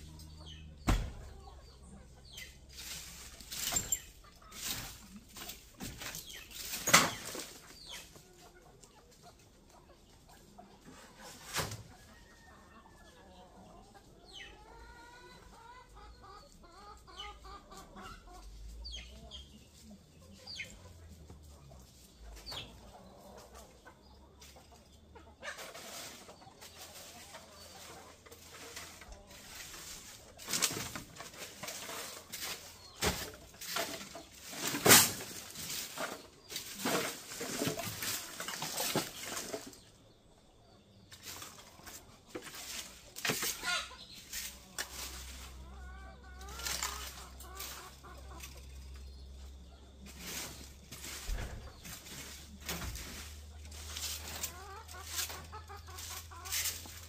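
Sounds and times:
wings flapping and scuffling: 0.0s - 12.4s, 17.4s - 40.4s, 41.1s - 57.0s
chickens clucking: 0.0s - 57.0s.

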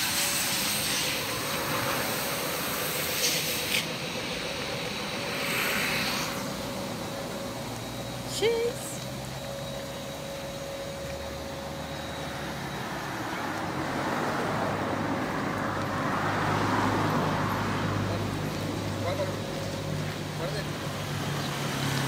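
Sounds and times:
steady road hum: 0.0s - 22.0s
vehicle passing close by: 0.2s - 8.3s, 11.2s - 22.0s.

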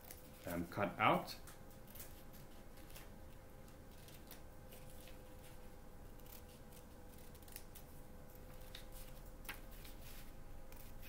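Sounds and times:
scissors cutting paper: 1.8s - 11.0s.

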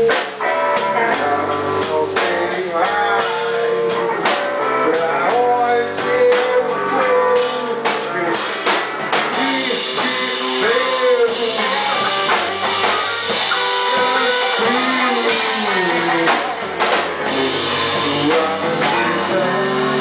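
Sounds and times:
drum kit steady beat: 0.0s - 20.0s
lead guitar with bent notes: 0.0s - 20.0s.

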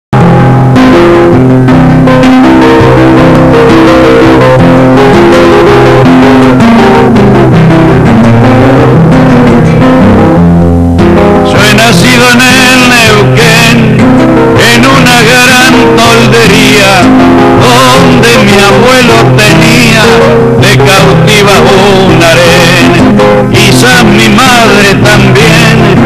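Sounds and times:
guitar plucked notes and chords: 0.2s - 26.0s
person's voice: 11.4s - 26.0s.

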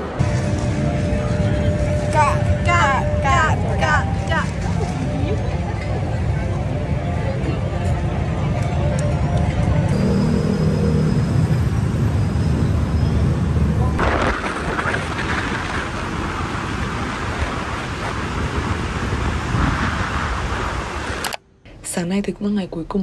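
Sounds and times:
city traffic rumble: 0.0s - 23.0s
motorbike road noise: 4.1s - 21.3s
wind rushing over microphone: 11.5s - 21.3s.

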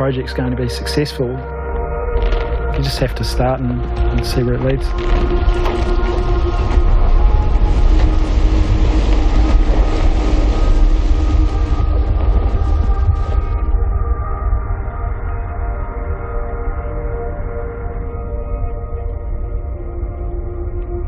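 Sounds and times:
orchestral music held tones: 0.0s - 21.0s
glacier ice calving rumble: 1.8s - 21.0s.

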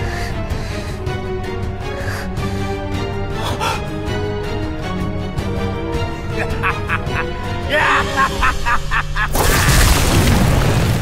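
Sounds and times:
explosion blast: 9.3s - 11.0s.

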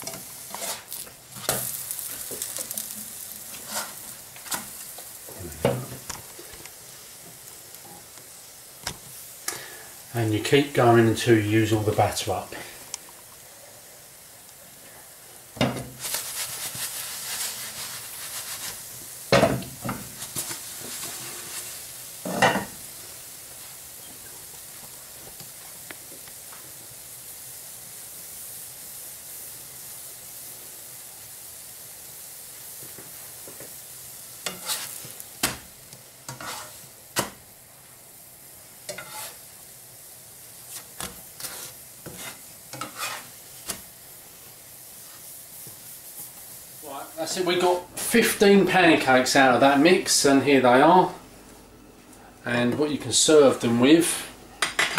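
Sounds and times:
batter sizzling in a frying pan: 0.0s - 51.1s, 52.1s - 54.9s
knocks and scrapes on a pan: 36.3s - 37.4s, 38.9s - 39.4s, 40.7s - 43.8s.

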